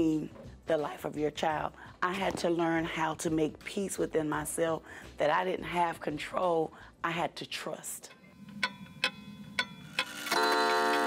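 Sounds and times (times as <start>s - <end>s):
pendulum clock ticking: 8.1s - 11.0s.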